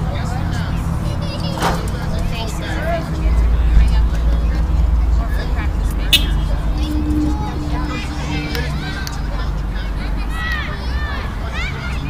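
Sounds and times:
distant voices of children: 0.0 - 12.0.

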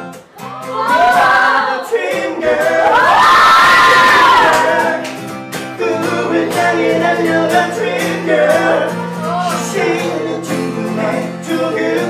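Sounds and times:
crowd cheering: 0.4 - 5.2
group singing unaccompanied: 0.6 - 12.0.

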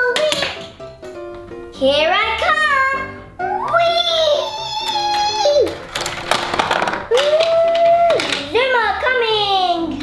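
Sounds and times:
plastic toy rattling and clicking: 4.8 - 8.5.

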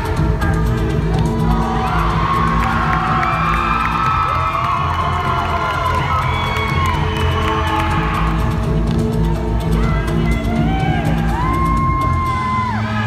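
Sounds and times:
loud dance music: 0.0 - 13.0
crowd cheering and whooping: 1.2 - 13.0.

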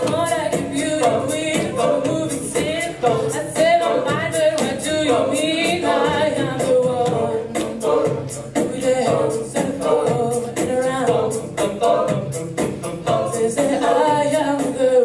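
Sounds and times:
a cappella group singing: 0.0 - 15.0
vocal percussive beat: 0.0 - 15.0.

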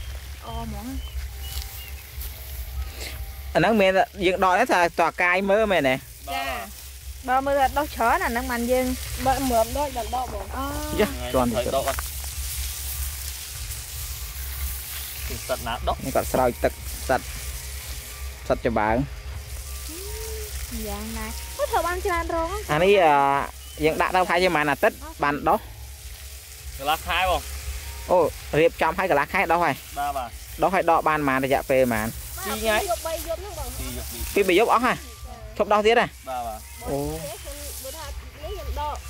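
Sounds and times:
fluttering low rumble: 0.0 - 39.0
steady hiss: 0.0 - 39.0
steady low hum: 0.0 - 39.0
person talking: 9.2 - 12.0.

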